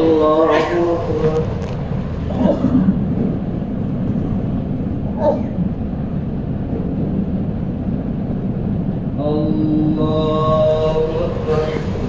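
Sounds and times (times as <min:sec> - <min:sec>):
steady low rumbling: 0:00.0 - 0:12.0.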